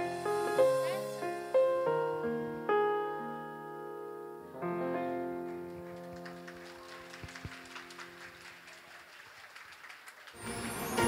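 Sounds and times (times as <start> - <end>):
piano notes: 0.0 - 8.4
audience applause: 5.5 - 11.0.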